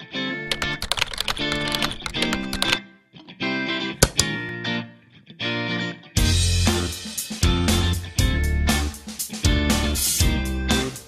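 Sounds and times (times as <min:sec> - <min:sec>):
guitar background music: 0:00.0 - 0:11.0
rapid keyboard typing: 0:00.5 - 0:02.8.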